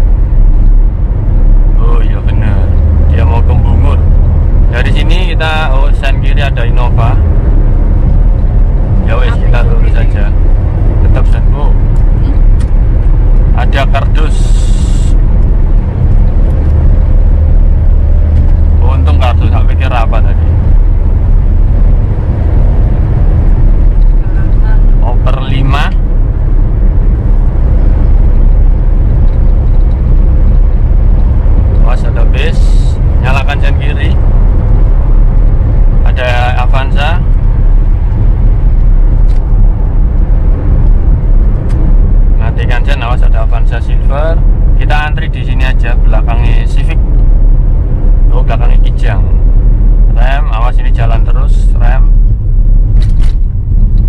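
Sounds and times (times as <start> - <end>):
car engine drone: 0.0 - 54.0
tyre road rumble: 0.0 - 54.0.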